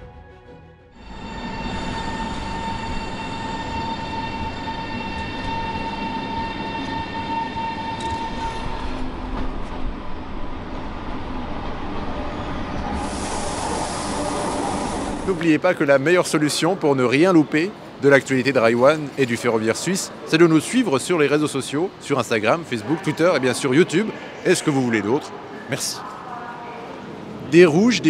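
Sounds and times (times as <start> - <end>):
electric train rumbling: 0.0 - 28.0
high whine of train: 0.0 - 28.0
rushing hiss of passing train: 1.0 - 28.0.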